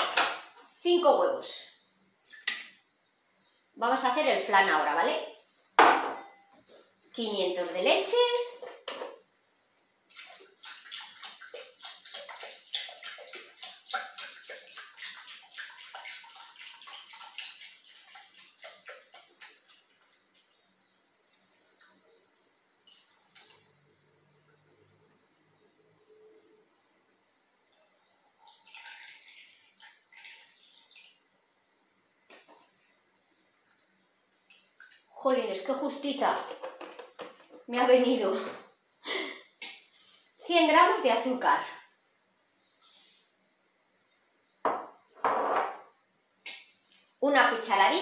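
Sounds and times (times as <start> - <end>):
milk pouring into steel bowl: 28.4 - 31.2.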